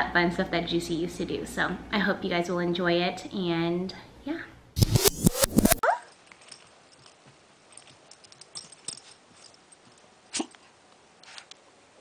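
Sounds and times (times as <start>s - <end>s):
soft clicks and scuffles: 5.6s - 11.6s.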